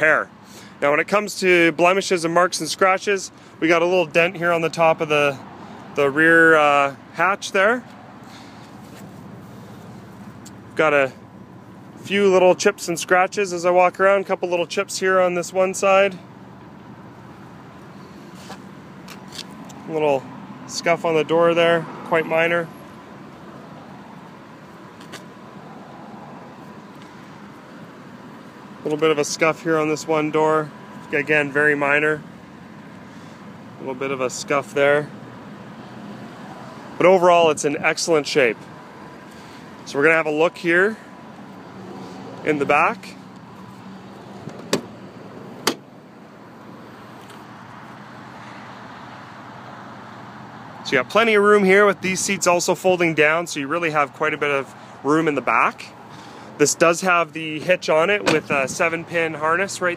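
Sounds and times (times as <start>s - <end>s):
tailgate latch clicks: 45.6s - 45.9s.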